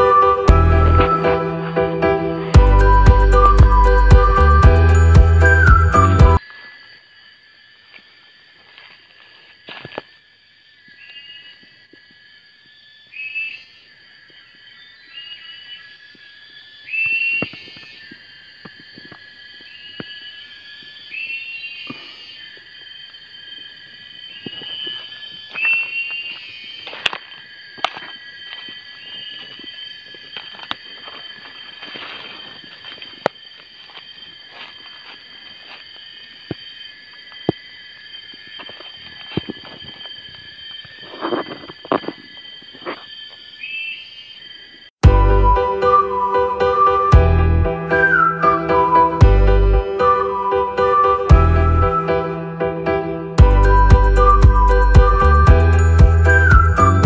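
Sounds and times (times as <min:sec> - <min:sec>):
insects droning: 0:00.0 - 0:57.0
footsteps on dry leaves: 0:08.5 - 0:10.1, 0:24.4 - 0:36.4.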